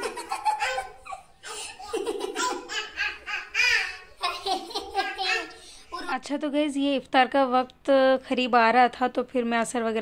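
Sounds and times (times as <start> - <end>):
toddler laughing: 0.0 - 5.6.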